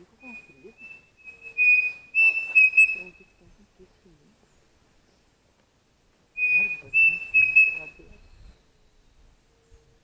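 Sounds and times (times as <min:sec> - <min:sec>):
cuckoo whistling: 0:00.2 - 0:03.2, 0:06.4 - 0:08.6.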